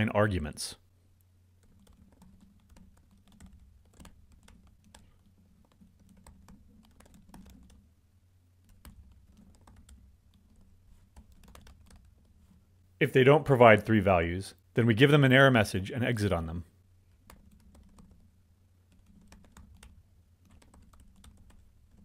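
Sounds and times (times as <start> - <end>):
typing on computer keyboard: 1.6 - 7.8, 8.6 - 12.4, 17.2 - 18.3, 18.9 - 22.0.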